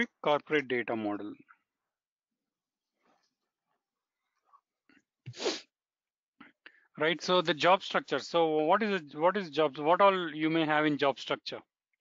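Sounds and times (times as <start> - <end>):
person sneezing: 5.3 - 5.7.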